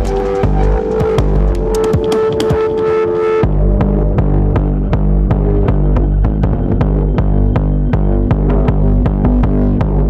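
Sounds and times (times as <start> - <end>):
distorted kick drum and bass: 0.0 - 2.8, 3.4 - 10.0.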